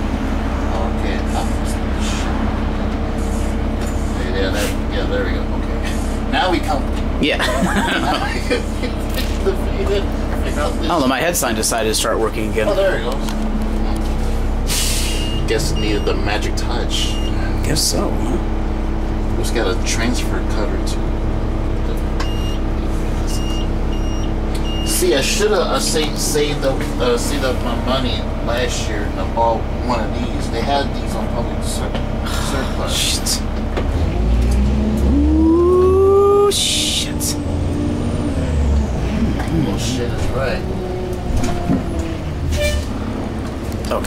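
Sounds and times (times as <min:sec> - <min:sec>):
bus engine drone: 0:00.0 - 0:44.0.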